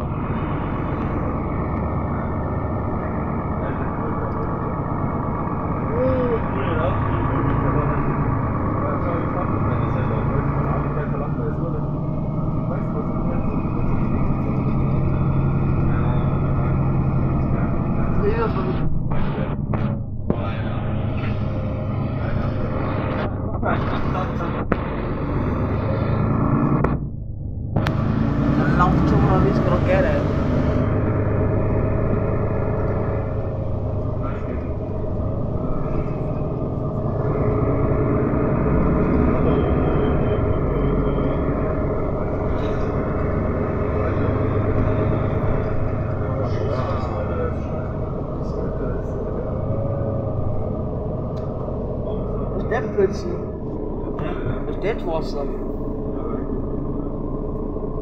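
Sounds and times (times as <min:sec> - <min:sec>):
bus engine and road rumble: 0:00.0 - 0:58.0.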